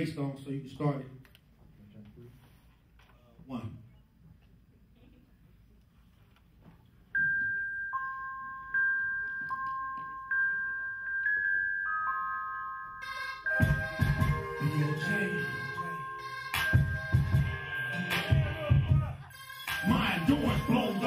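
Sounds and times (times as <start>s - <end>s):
bell-like melody: 7.2s - 21.0s
hip hop beat with heavy bass: 10.1s - 21.0s.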